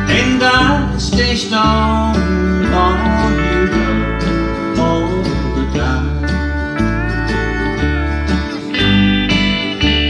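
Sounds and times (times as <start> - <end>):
bass line: 0.0 - 10.0
lead guitar sliding notes: 0.0 - 10.0.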